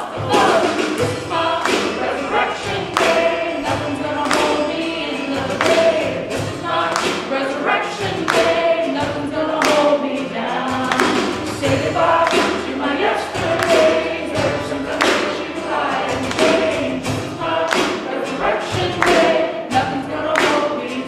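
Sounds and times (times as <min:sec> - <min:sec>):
drum kit: 0:00.0 - 0:21.0
strummed acoustic string instrument: 0:00.0 - 0:21.0
voices singing: 0:00.0 - 0:21.0.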